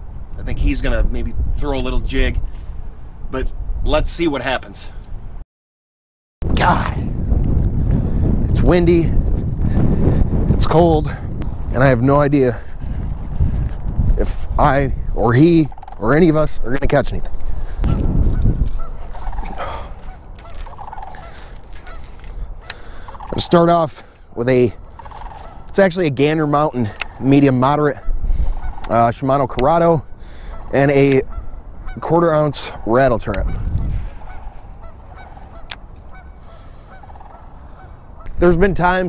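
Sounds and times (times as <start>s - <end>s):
wind buffeting microphone: 0.0s - 5.4s, 6.4s - 39.0s
distant bird calls: 15.5s - 16.4s, 17.3s - 25.9s, 26.5s - 38.5s
geese honking: 15.6s - 16.4s, 17.8s - 25.8s, 26.5s - 38.6s.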